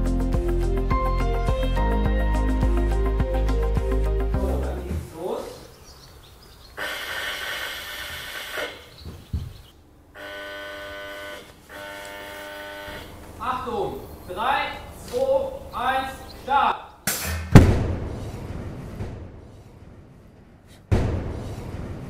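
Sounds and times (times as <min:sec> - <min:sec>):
loud explosion with rumble: 0:17.5 - 0:20.0, 0:20.9 - 0:22.0.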